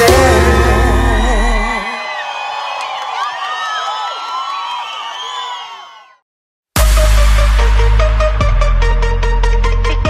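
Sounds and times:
concert audience cheering: 0.0s - 6.2s.

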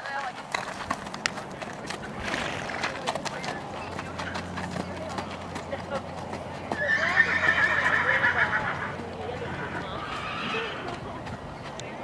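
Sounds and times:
hooves clip-clopping on gravel: 0.0s - 12.0s
horse whinnying: 6.8s - 10.9s.

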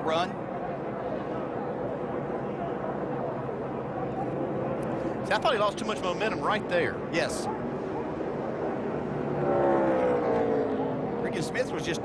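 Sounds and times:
racing cars engines droning: 0.0s - 12.0s.

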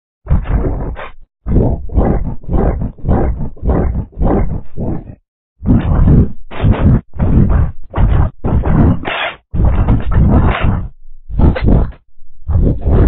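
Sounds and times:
deep distorted roaring bursts: 0.3s - 13.0s.

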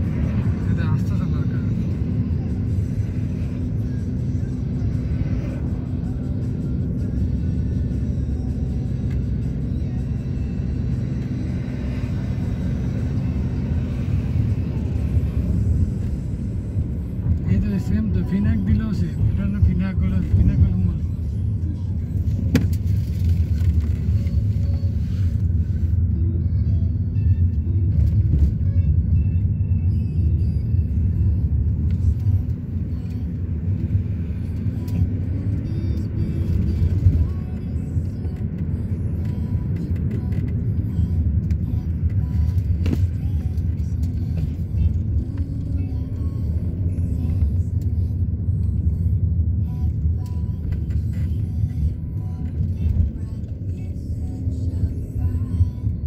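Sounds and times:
car engine and tyres rumbling: 0.0s - 56.0s.

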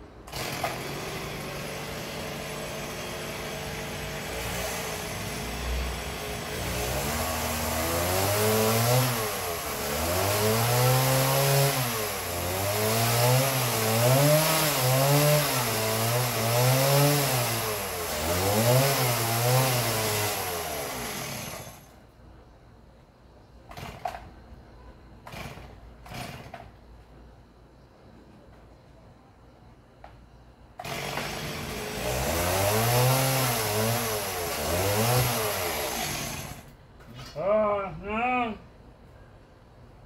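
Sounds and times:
small engine revving: 0.3s - 21.9s, 30.8s - 36.7s.

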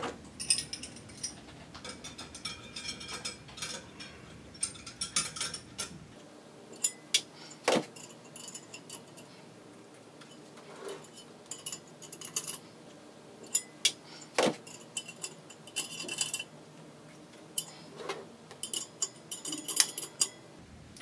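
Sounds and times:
small metallic clicks and clinks: 0.3s - 6.0s, 6.8s - 9.3s, 10.2s - 12.6s, 13.4s - 14.0s, 14.6s - 16.5s, 18.5s - 20.4s
ringing metal clink: 0.4s - 5.9s.

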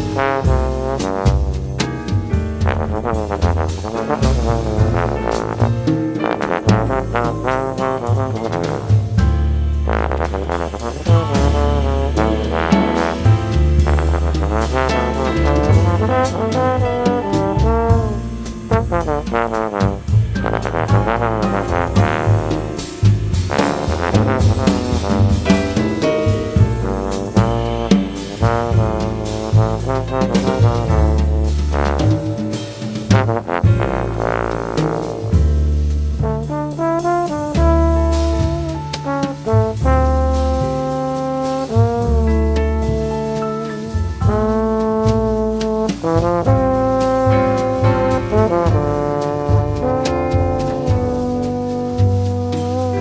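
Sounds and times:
big band jazz: 0.0s - 53.0s
low bass notes: 0.0s - 53.0s
trombone melody: 0.0s - 53.0s.

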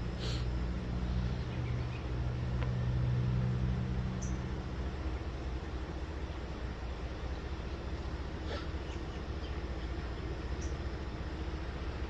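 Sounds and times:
locomotive engine droning: 0.0s - 12.0s.

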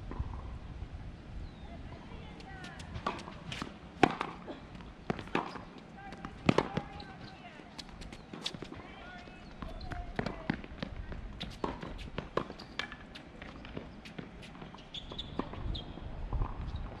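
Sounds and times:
tennis ball hit by racquets: 2.6s - 7.2s, 11.4s - 14.8s.

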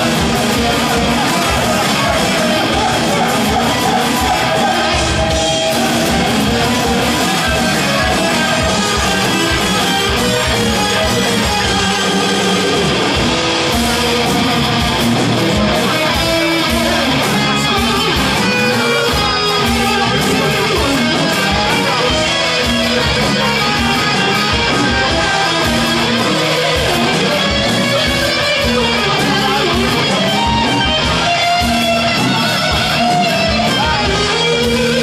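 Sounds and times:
distorted electric guitar: 0.0s - 35.0s
heavy metal band playing: 0.0s - 35.0s.

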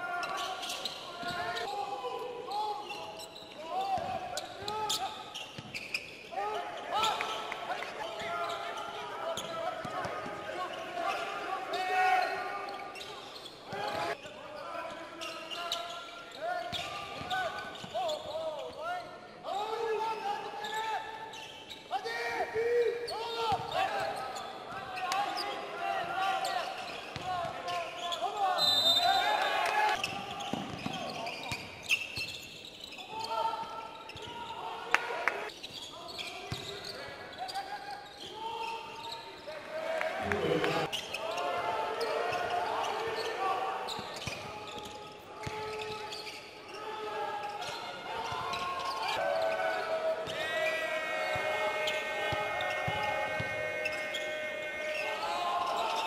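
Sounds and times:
ball bouncing on court: 30.0s - 31.6s.

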